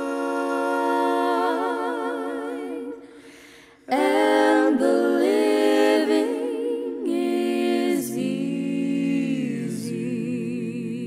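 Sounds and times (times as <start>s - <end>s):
vocal trio singing in harmony: 0.0s - 11.0s.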